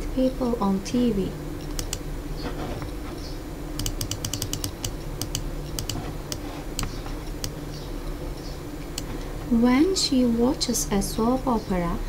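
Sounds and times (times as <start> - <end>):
low steady hum: 0.0 - 12.0
computer mouse clicking: 1.6 - 2.0, 3.8 - 7.6.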